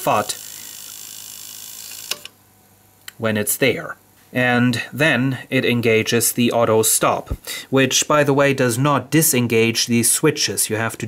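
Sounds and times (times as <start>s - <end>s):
tape reel motors whirring: 0.0s - 2.4s.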